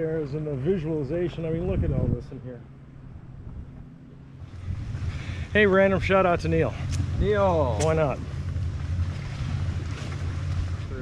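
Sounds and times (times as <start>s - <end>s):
wind on microphone: 1.2s - 11.0s.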